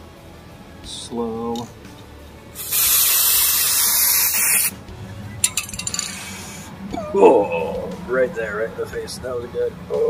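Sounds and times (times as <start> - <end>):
aerosol can spraying: 2.6 - 4.8.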